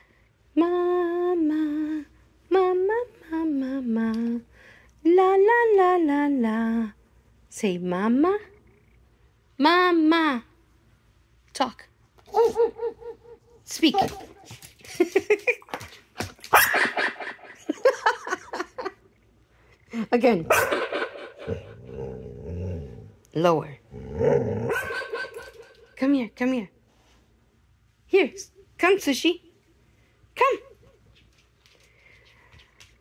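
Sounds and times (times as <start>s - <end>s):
woman humming a tune: 0.6s - 4.4s
dog yipping and whimpering: 12.3s - 14.5s, 24.7s - 25.8s
dog barking: 16.5s - 17.2s, 20.5s - 21.8s, 24.7s - 25.8s.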